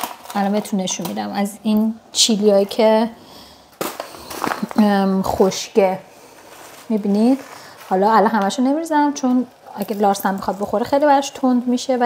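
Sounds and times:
paper packet crinkling: 0:03.8 - 0:05.6, 0:06.2 - 0:08.7.

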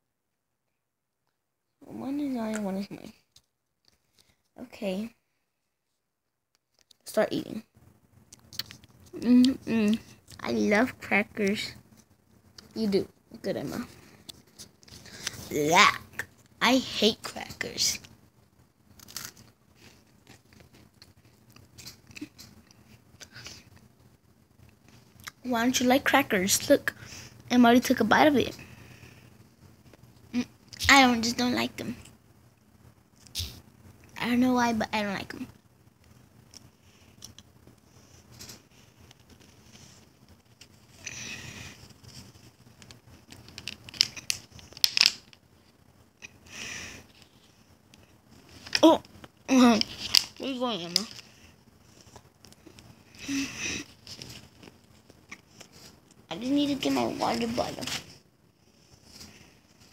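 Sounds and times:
cracker crunching: 0:18.9 - 0:22.8, 0:41.9 - 0:45.4.

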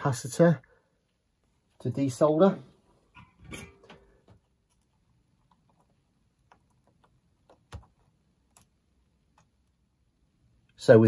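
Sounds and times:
small clicks and taps: 0:03.9 - 0:09.7.

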